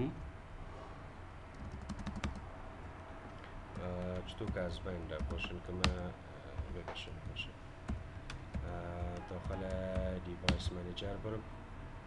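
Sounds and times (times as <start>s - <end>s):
low steady hum: 0.0s - 12.0s
computer keyboard clicks: 1.6s - 2.4s, 5.2s - 6.0s.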